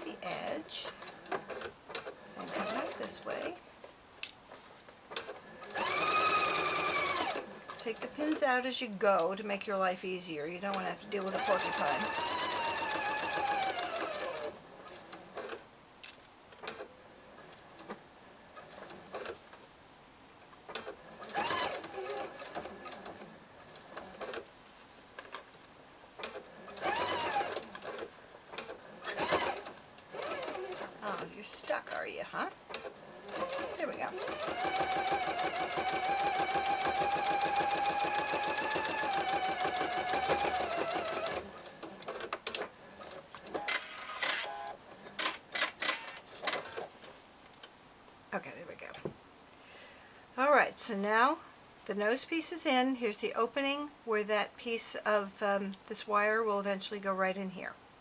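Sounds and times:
electric sewing machine stitching: 0:00.8 - 0:03.2, 0:05.2 - 0:08.4, 0:10.7 - 0:15.6, 0:20.7 - 0:24.4, 0:26.2 - 0:31.9, 0:32.7 - 0:42.3.

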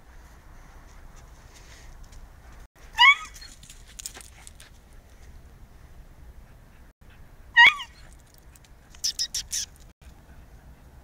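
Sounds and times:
dog squealing: 0:07.6 - 0:08.0.

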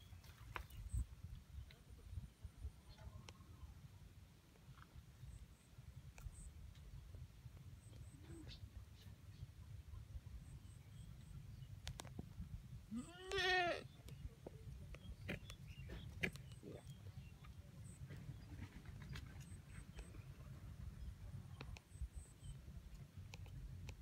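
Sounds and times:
goat bleating: 0:12.9 - 0:13.9
faint clicks: 0:22.9 - 0:24.0.

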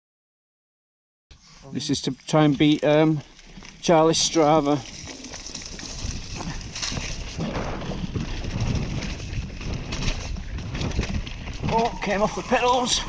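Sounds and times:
bike knocking and rattling: 0:02.3 - 0:12.8.

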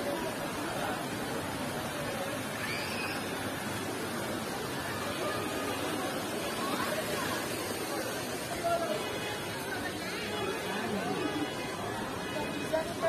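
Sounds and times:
people chattering: 0:00.0 - 0:13.0
stream water running: 0:00.0 - 0:13.0.

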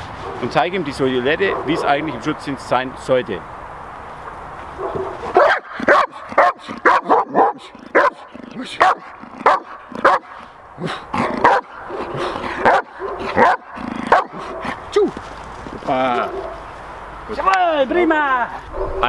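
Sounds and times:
dog barking: 0:01.4 - 0:02.0, 0:04.8 - 0:14.8, 0:16.2 - 0:16.6.

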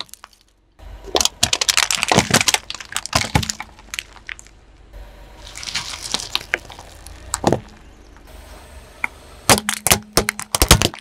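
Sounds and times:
plastic syringes cracking and bursting: 0:00.0 - 0:00.5, 0:01.1 - 0:04.6, 0:05.5 - 0:07.6, 0:09.5 - 0:11.0.

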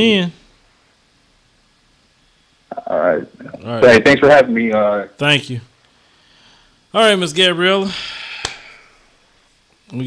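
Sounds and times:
faint low hum: 0:00.0 - 0:10.0
man speaking: 0:02.7 - 0:05.7.

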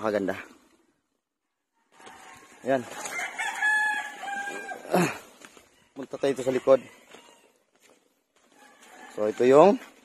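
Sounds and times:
rooster crowing: 0:01.7 - 0:07.7, 0:08.4 - 0:09.9.

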